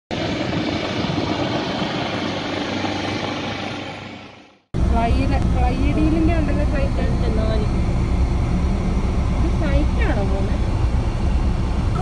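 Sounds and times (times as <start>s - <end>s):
helicopter engine and rotor: 0.1s - 12.0s.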